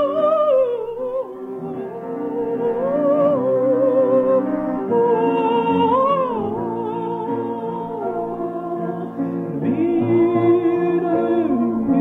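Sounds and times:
person singing: 0.0s - 12.0s
sustained piano chords: 0.0s - 12.0s.

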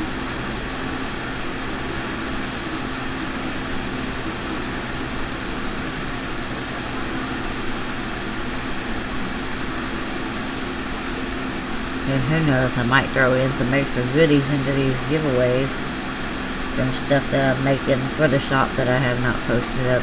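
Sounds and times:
fan motor whooshing hum: 0.0s - 20.0s.

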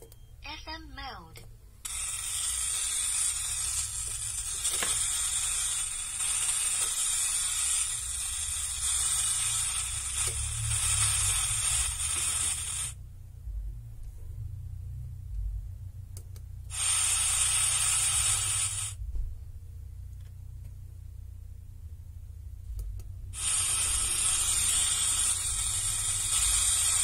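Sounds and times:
loud static hiss: 0.0s - 13.0s, 16.7s - 19.0s, 23.2s - 27.0s.

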